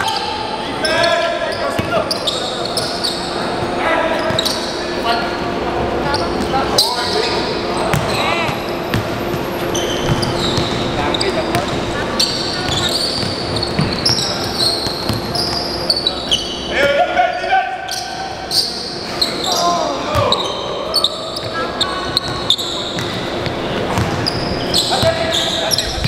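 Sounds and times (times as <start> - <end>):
players calling out: 0.0 - 26.0
sneakers squeaking: 0.0 - 26.0.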